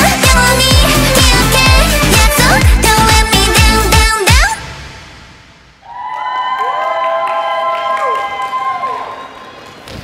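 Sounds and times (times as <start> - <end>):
women cheering woo: 5.8 - 9.5.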